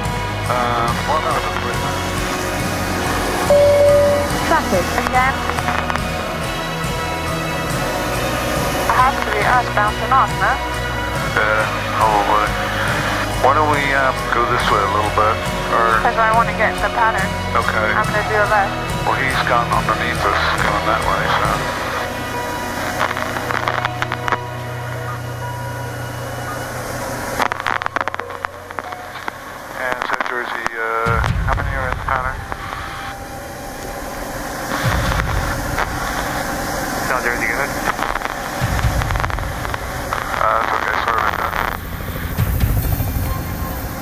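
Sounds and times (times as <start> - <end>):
aircraft engine drone: 0.0 - 44.0
voices: 0.0 - 44.0.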